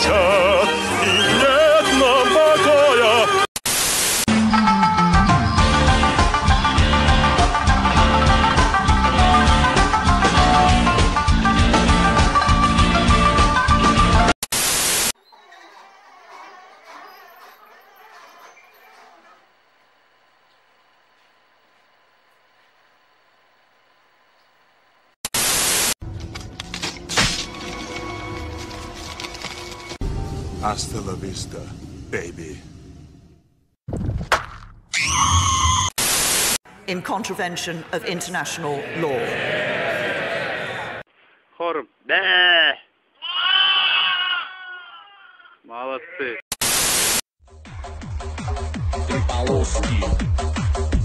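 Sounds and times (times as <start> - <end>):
burst of white noise: 3.6 - 4.3, 14.5 - 15.1, 25.2 - 26.0, 36.0 - 36.6, 46.6 - 47.2
lambs bleating: 42.1 - 46.2.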